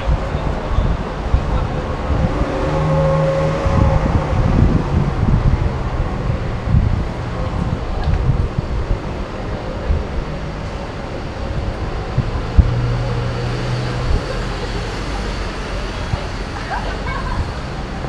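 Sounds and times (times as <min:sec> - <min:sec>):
cars passing on road: 0:00.0 - 0:18.0
low steady drone: 0:00.0 - 0:18.0.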